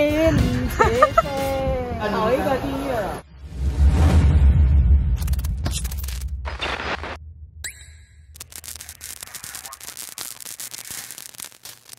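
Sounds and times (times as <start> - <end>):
bass-heavy trailer music: 3.2 - 6.6
crackling static: 5.2 - 7.2, 8.3 - 11.9
rising electronic sweep: 7.7 - 11.9.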